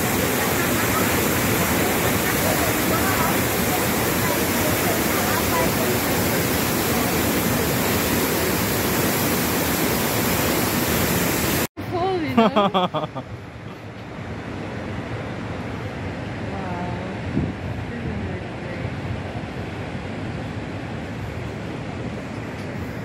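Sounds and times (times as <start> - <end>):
faint voices: 0.0 - 7.8
waterfall rushing: 0.0 - 11.7.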